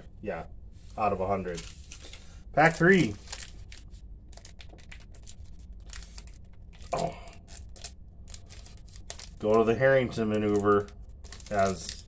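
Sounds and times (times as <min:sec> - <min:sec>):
foil wrapper tearing and crinkling: 0:01.5 - 0:09.7, 0:10.3 - 0:12.0.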